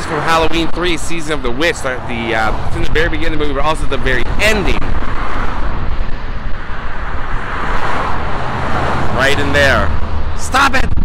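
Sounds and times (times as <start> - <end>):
outdoor deep rumble: 1.7 - 11.0.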